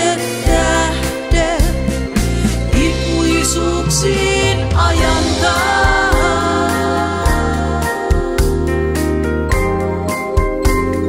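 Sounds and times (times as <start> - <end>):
woman singing ballad: 0.0 - 9.3
instrumental accompaniment with bass: 0.0 - 11.0.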